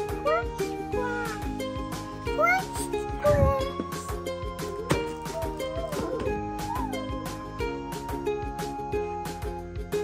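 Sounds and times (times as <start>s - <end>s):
background music with beat: 0.0s - 10.0s.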